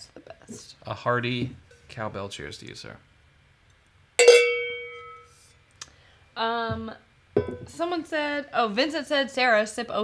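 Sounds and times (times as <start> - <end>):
cowbell ringing: 4.2 - 5.3.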